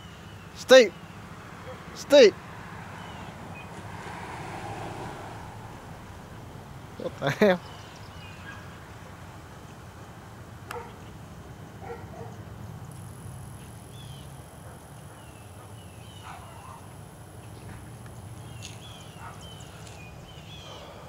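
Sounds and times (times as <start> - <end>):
birds chirping: 0.0 - 4.0, 5.8 - 21.0
high-pitched insect drone: 12.8 - 20.3.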